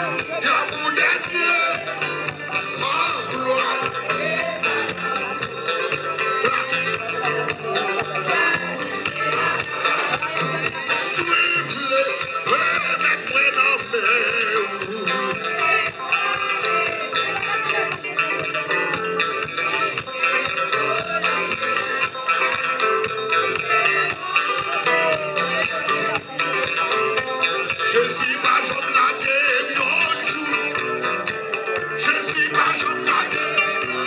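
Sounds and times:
electric guitars: 0:00.0 - 0:34.0
lead singer's voice: 0:00.0 - 0:34.0.

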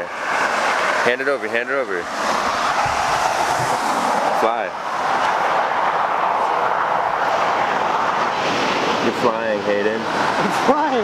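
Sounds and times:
highway traffic hiss: 0:00.0 - 0:11.0.

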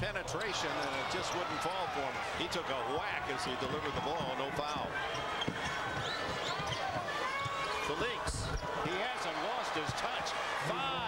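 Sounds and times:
arena crowd noise: 0:00.0 - 0:11.0
basketball bouncing: 0:03.6 - 0:07.7
sneaker squeaks: 0:04.8 - 0:08.8.

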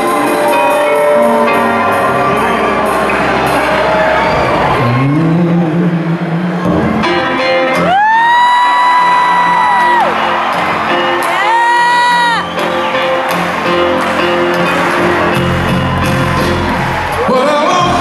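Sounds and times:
band playing softly: 0:00.0 - 0:18.0
crowd noise: 0:00.0 - 0:18.0
person whooping: 0:07.9 - 0:10.1, 0:11.3 - 0:12.5.

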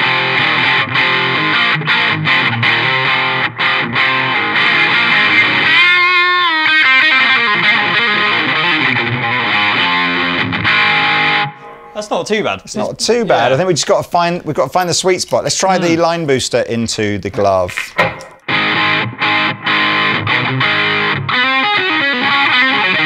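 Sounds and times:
overdriven electric guitar lead: 0:00.0 - 0:12.0, 0:17.9 - 0:23.0.

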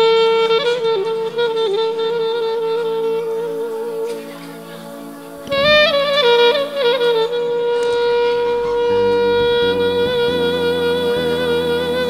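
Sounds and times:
wind instrument long note: 0:00.0 - 0:12.0.

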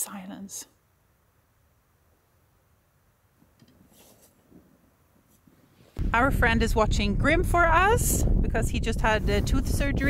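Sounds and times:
faint soft rustles: 0:03.7 - 0:06.0.

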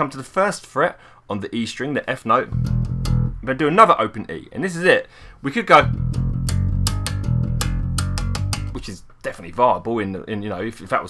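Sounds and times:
electric bass guitar riff: 0:02.5 - 0:03.7, 0:05.7 - 0:08.9.

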